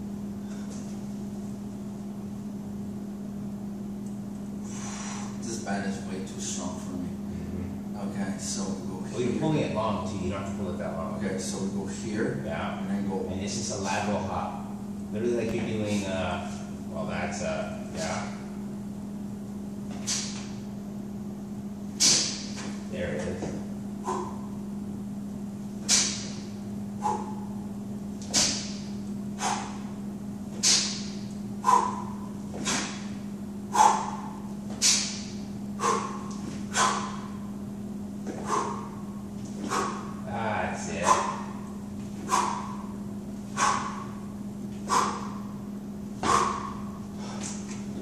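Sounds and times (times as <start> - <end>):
steady low hum: 0.0 - 48.0
hops on rubber floor: 38.2 - 40.2.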